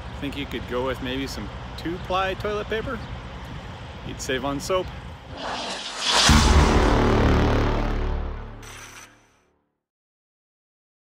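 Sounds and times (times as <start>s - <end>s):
whoosh: 5.3s - 8.0s
deep boom: 5.3s - 8.5s
sustained low chord: 6.3s - 8.6s.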